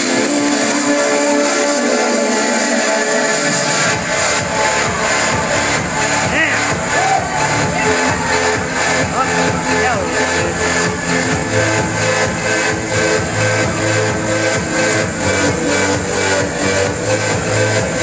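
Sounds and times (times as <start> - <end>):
electronic dance music: 0.0 - 18.0.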